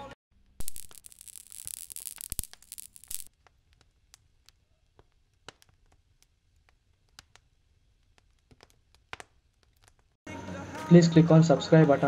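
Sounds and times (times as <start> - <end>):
crackling hissing noise with snaps: 0.4 - 10.2.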